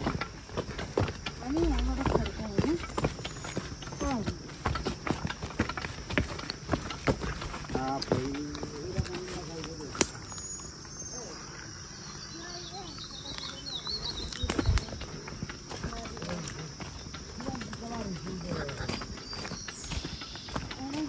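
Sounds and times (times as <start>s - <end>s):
footsteps on stony trail: 0.0s - 21.0s.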